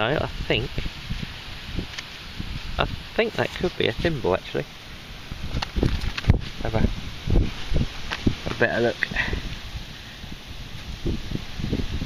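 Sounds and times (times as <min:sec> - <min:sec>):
faint rustling hiss: 0:00.0 - 0:12.0
wind buffeting microphone: 0:00.0 - 0:12.0.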